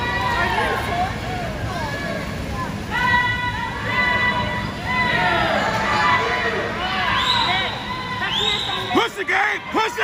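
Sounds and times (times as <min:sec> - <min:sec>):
indoor pool hall din: 0:00.0 - 0:10.0
spectators shouting and cheering: 0:00.0 - 0:10.0.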